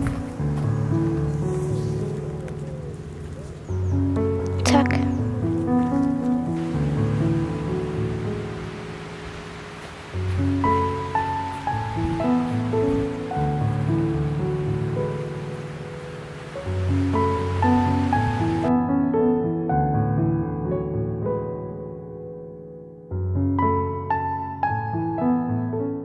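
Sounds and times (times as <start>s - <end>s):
slow instrumental music: 0.0s - 26.0s.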